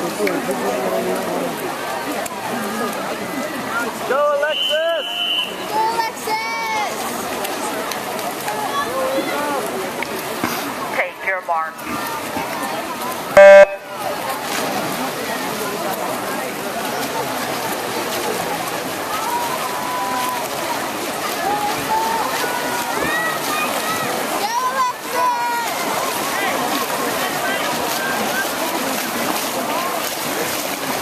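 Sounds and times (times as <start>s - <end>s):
electronic start beep: 13.4s - 13.9s
spectators shouting and cheering: 16.4s - 31.0s.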